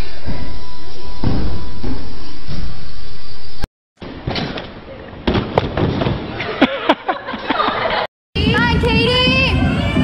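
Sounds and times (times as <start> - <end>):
thuds of landing on gym mats: 4.0 - 6.3
children's voices and shouts: 8.4 - 10.0.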